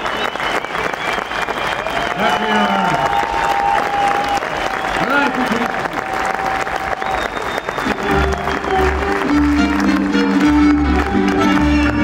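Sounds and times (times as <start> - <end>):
audience applauding: 0.0 - 12.0
folk string band playing: 7.9 - 12.0.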